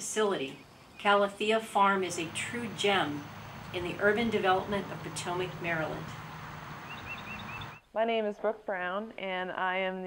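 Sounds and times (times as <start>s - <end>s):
open-air background hiss: 0.0s - 10.0s
small bird chirping: 2.2s - 7.9s.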